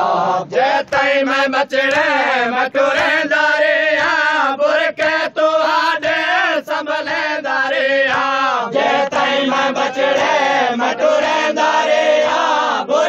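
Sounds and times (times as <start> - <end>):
person chanting a lament: 0.0 - 13.0.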